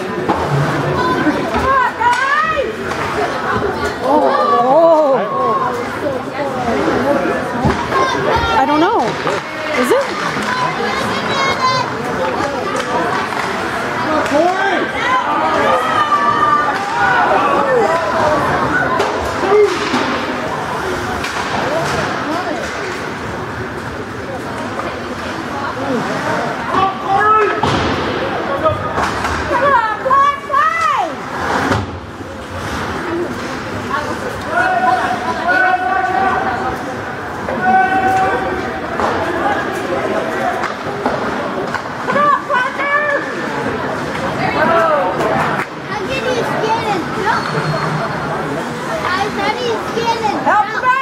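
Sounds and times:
spectators chatting: 0.0s - 51.0s
hockey sticks and puck knocks: 7.6s - 11.1s, 12.2s - 14.6s, 19.0s - 20.4s, 21.2s - 23.3s, 27.4s - 28.2s, 28.9s - 29.6s, 30.8s - 32.0s, 38.9s - 39.3s, 40.3s - 42.3s.

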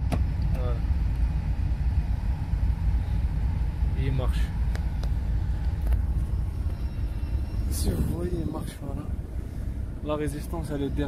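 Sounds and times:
heater blower rumble: 0.0s - 11.0s.

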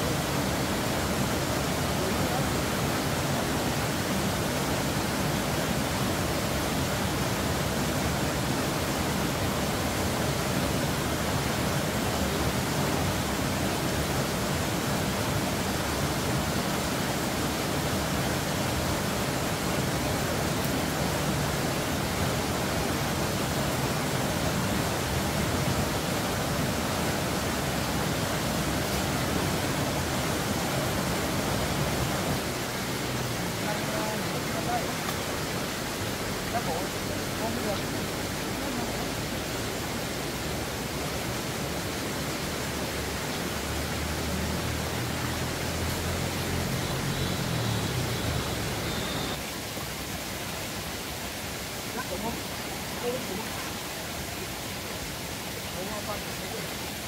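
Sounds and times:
flowing stream water: 0.0s - 57.0s.

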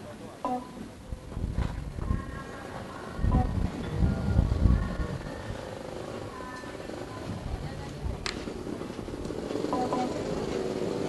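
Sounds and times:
open-air background noise: 0.0s - 11.0s.

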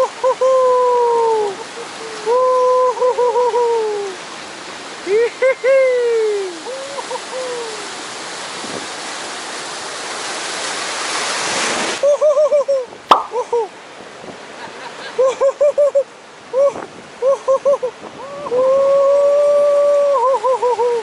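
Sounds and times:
surf rushing: 0.0s - 21.0s.

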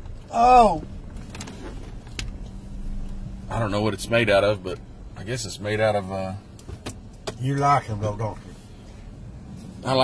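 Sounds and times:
car rumbling inside cabin: 0.0s - 10.0s.

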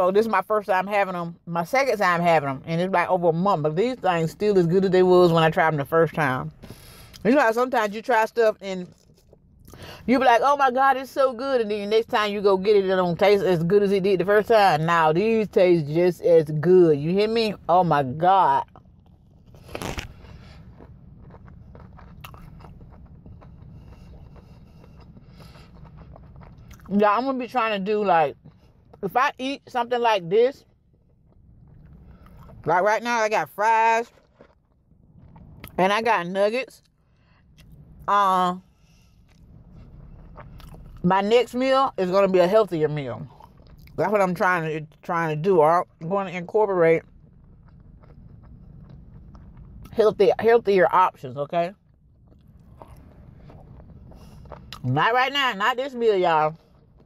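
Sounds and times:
low steady hum: 0.0s - 57.0s
chewing crunchy food: 18.6s - 27.0s, 30.6s - 32.7s, 34.0s - 35.8s, 38.7s - 41.0s, 43.2s - 44.0s, 47.0s - 50.0s, 51.8s - 55.0s, 55.9s - 57.0s
crunchy bite: 18.7s - 26.9s, 52.3s - 54.9s.

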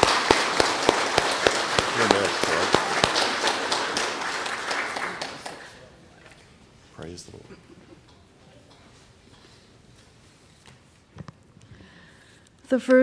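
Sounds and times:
congregation applauding: 0.0s - 6.0s.

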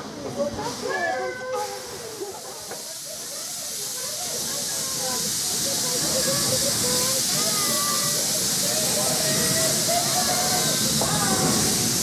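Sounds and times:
steam locomotive hissing: 0.0s - 12.0s.

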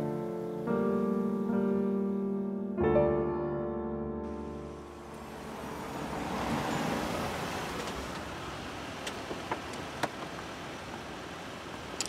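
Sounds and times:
car engine and tyres rumbling: 4.3s - 12.0s.

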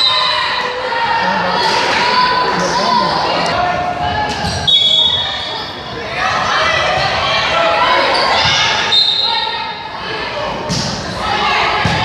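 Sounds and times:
echoing voices and chatter: 0.0s - 12.0s
shrill referee's whistle: 4.5s - 5.7s, 8.9s - 9.5s.

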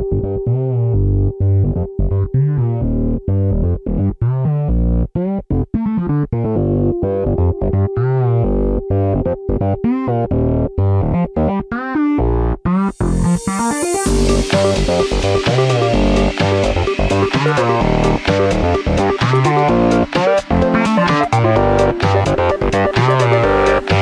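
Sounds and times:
electronic music: 0.0s - 24.0s.

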